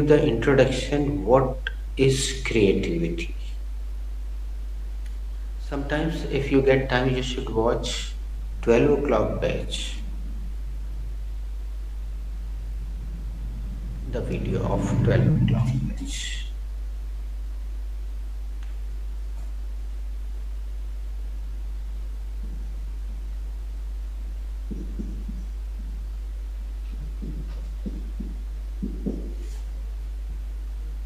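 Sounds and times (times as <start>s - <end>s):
background hiss: 0.0s - 31.0s
faint muffled low sounds: 0.0s - 31.0s
low hum: 0.0s - 31.0s.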